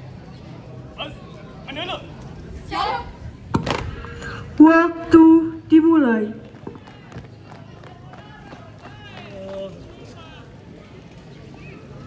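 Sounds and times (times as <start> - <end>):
crowd voices: 0.0 - 12.0
boots marching on court: 6.4 - 9.8.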